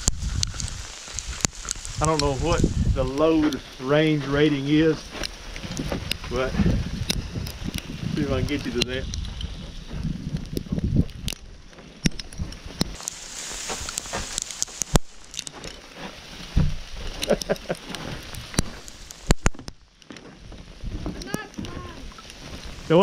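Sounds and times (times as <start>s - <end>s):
footsteps crunching on icy snow: 0.0s - 23.0s
person laughing: 17.2s - 17.9s.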